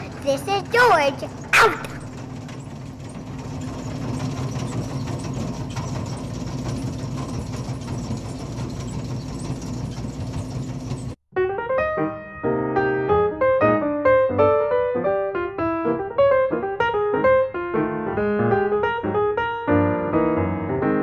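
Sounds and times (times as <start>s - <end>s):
skid steer mechanical hum: 0.0s - 11.2s
piano music: 11.3s - 21.0s.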